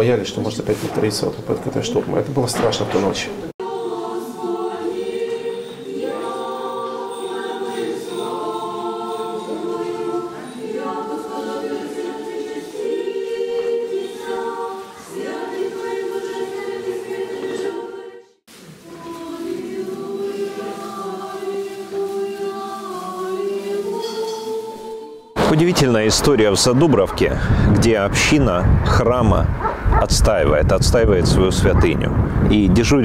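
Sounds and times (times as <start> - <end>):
choir singing unaccompanied chant: 3.2 - 25.4.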